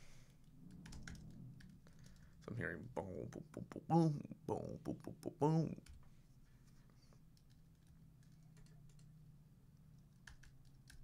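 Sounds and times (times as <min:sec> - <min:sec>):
low steady hum: 0:00.0 - 0:11.0
keyboard and mouse clicks: 0:00.7 - 0:02.3, 0:10.0 - 0:11.0.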